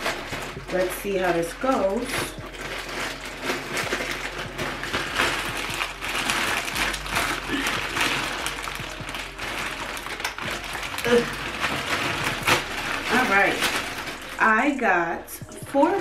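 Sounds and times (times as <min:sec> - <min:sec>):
plastic mailer bag tearing: 0:00.0 - 0:16.0.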